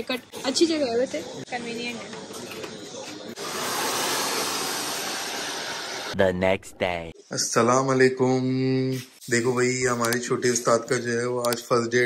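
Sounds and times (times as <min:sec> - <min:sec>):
hair dryer running: 0:03.4 - 0:06.2.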